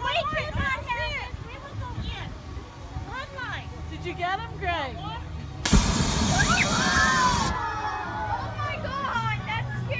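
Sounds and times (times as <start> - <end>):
loud burst of hiss: 5.6 - 7.6.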